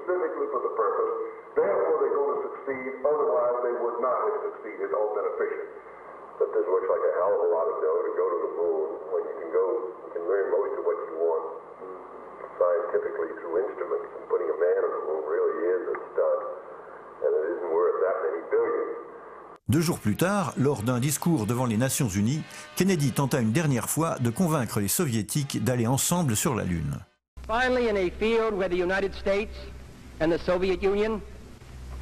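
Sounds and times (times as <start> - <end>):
men in conversation: 19.7 - 27.1.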